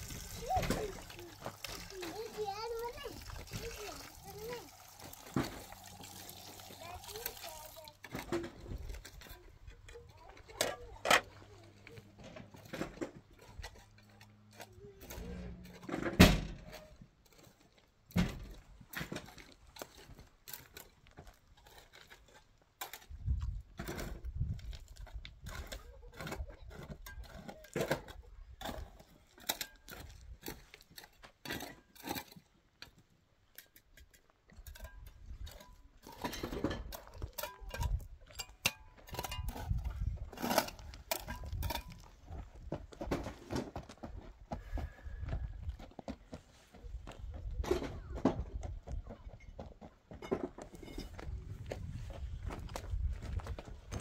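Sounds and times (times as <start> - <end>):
water running into metal pot: 0.0 - 8.2
knocks and clinks of washing: 0.0 - 9.3, 34.6 - 42.0.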